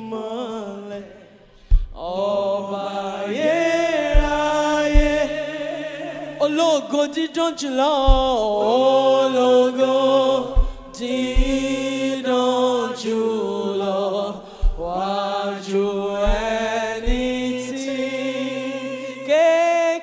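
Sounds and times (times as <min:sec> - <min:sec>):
person singing gospel: 0:00.0 - 0:20.0
short low thuds: 0:01.6 - 0:02.0, 0:04.2 - 0:05.4, 0:08.1 - 0:08.5, 0:10.5 - 0:11.7, 0:14.5 - 0:15.0, 0:16.2 - 0:17.5.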